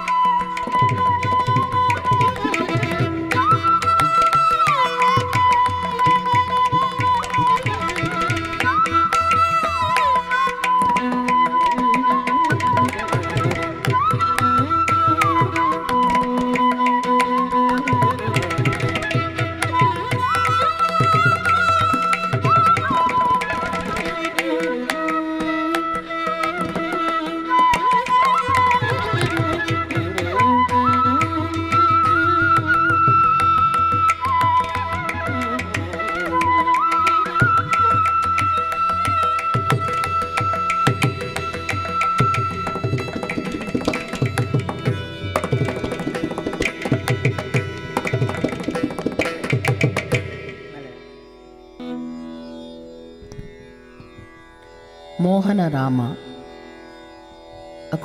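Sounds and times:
bamboo flute melody: 0:00.0 - 0:58.0
tanpura drone: 0:00.0 - 0:58.0
violin melody: 0:00.0 - 0:58.0
tanpura string plucked: 0:40.8 - 0:57.8.

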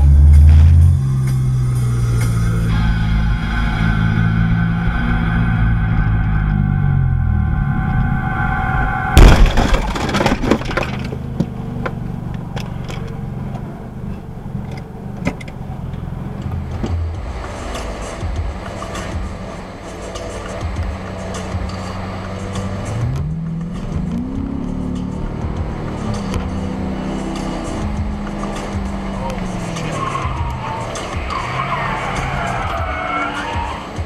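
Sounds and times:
road and engine noise: 0:00.0 - 0:34.0
loud collision crash: 0:08.6 - 0:11.1.

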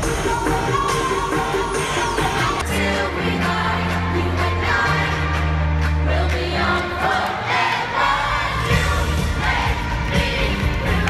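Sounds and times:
crowd singing along and cheering: 0:00.0 - 0:11.0.

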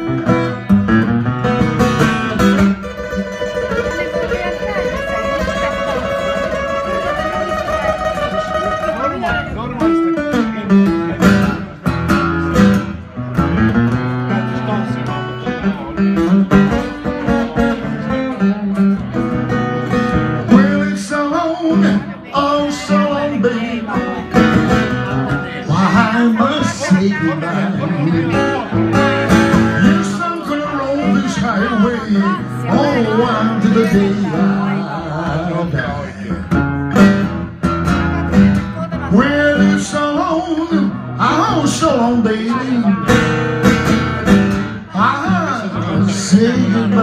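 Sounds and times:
acoustic blues guitar: 0:00.0 - 0:47.0
person singing: 0:25.3 - 0:28.7, 0:29.5 - 0:36.6, 0:38.8 - 0:43.2, 0:44.9 - 0:47.0.

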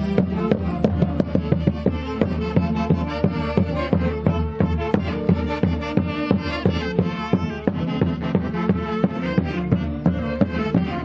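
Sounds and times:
festival music melody: 0:00.0 - 0:11.0
steady drum beat: 0:00.0 - 0:11.0.

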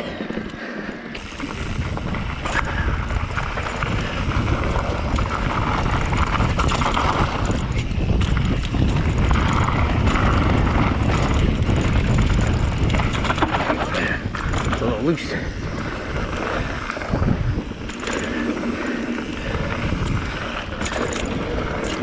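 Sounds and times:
tyres rolling over dirt: 0:00.0 - 0:22.0
wind buffeting microphone: 0:00.0 - 0:22.0
bike knocks and rattles: 0:01.2 - 0:22.0.

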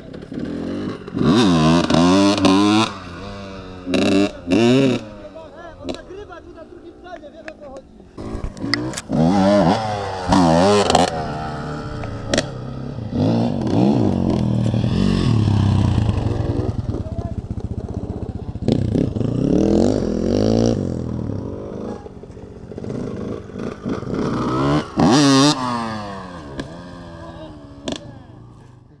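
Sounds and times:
dirt bike engines revving: 0:00.0 - 0:29.0.

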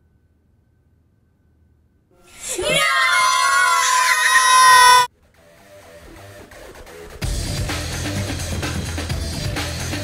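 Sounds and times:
children shouting: 0:02.3 - 0:05.1.

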